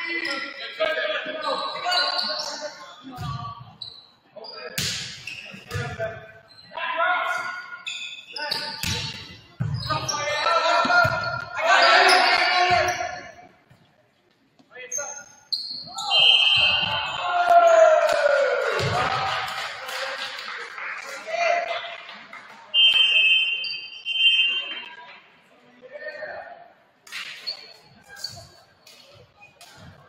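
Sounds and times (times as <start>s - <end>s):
players' voices: 0.0s - 13.5s
shouting and cheering: 16.0s - 20.2s.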